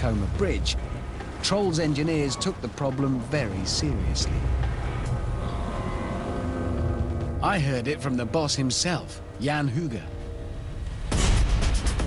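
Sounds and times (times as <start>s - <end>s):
low steady rumble: 0.0s - 11.8s.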